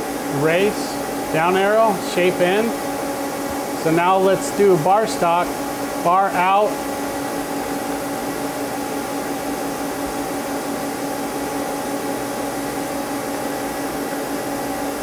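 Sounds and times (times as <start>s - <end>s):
machine humming: 0.0s - 15.0s.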